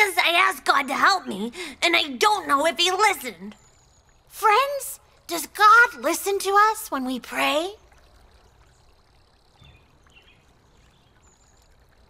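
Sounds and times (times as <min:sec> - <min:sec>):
soft bird chirps: 0:07.8 - 0:12.0.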